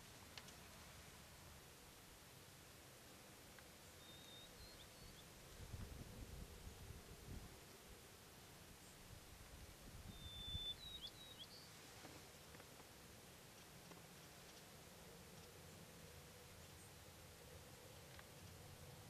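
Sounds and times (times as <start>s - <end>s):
bird whistling: 4.0s - 5.2s, 10.1s - 11.6s.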